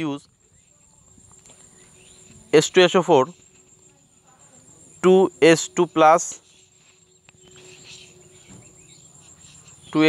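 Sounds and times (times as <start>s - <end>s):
faint background noise: 0.0s - 10.0s
high-pitched continuous tone: 0.0s - 10.0s
speech: 2.4s - 6.4s.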